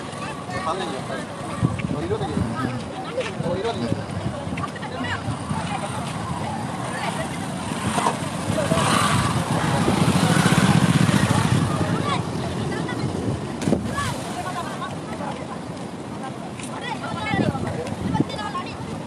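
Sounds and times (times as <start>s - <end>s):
faint voices: 0.0s - 19.0s
rushing outdoor noise: 0.0s - 19.0s.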